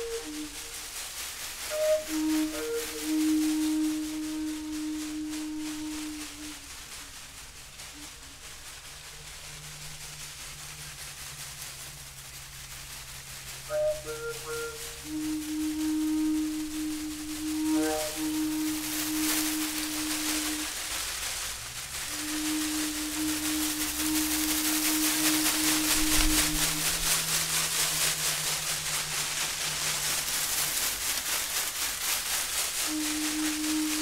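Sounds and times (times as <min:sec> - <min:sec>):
hand rattle shaking: 0:00.0 - 0:34.0
wooden flute held notes: 0:00.0 - 0:34.0.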